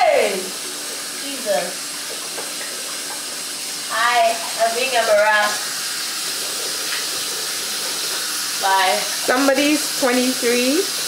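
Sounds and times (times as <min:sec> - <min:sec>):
tap running into sink: 0:01.9 - 0:10.2.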